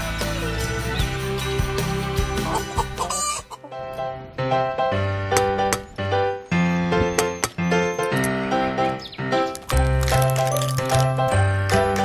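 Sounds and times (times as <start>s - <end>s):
background music: 0.0s - 12.0s
hen clucking: 2.4s - 3.8s.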